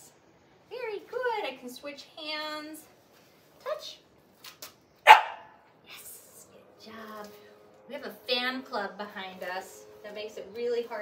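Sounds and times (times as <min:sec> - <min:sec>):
puppy barking: 0:05.0 - 0:05.6.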